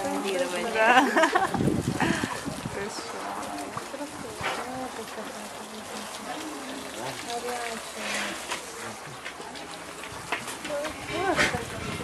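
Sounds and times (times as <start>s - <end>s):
water hose spraying: 0.0s - 12.0s.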